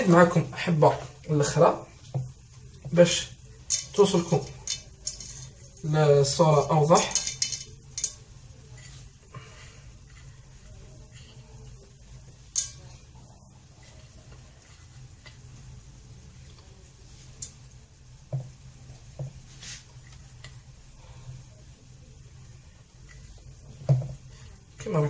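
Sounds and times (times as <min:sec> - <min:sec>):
low steady hum: 0:00.0 - 0:25.0
aluminium cups clinking and knocking: 0:06.9 - 0:09.0.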